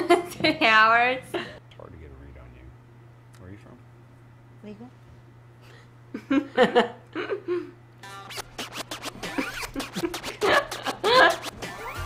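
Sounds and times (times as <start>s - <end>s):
party music track: 8.0s - 12.0s
turntable scratching: 8.0s - 12.0s.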